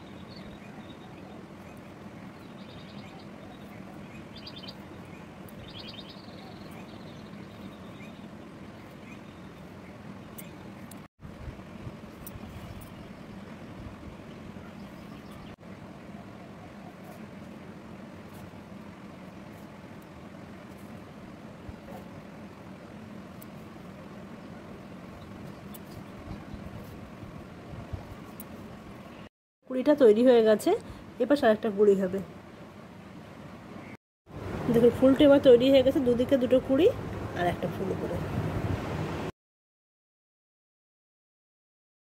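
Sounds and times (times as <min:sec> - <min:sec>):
small bird chirping trills: 0:00.0 - 0:11.0, 0:12.1 - 0:15.6
low background hum: 0:00.0 - 0:39.3.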